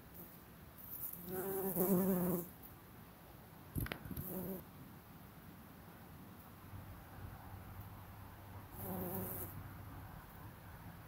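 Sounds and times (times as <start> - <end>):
bumblebee buzzing: 1.0 - 2.5, 8.8 - 9.5.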